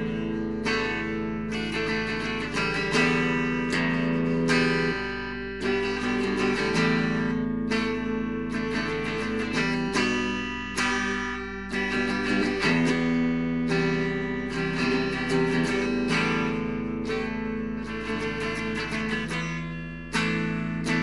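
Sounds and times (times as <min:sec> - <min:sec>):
guitar strumming chords: 0:00.0 - 0:21.0.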